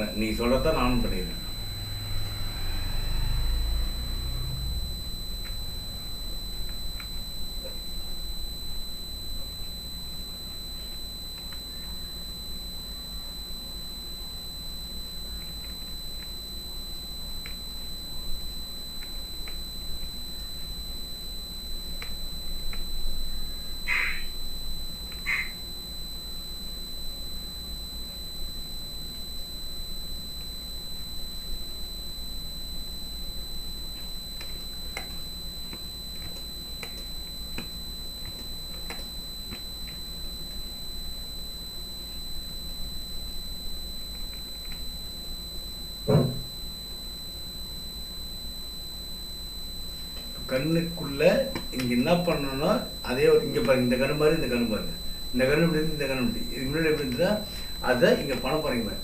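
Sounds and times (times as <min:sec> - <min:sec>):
high-pitched electronic whine: 0:00.0 - 0:59.0
low hum: 0:00.0 - 0:59.0
thump: 0:46.0 - 0:46.5.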